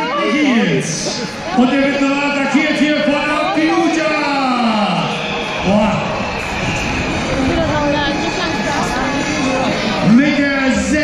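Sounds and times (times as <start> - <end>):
steady background noise: 0.0 - 11.0
voices talking: 0.0 - 11.0.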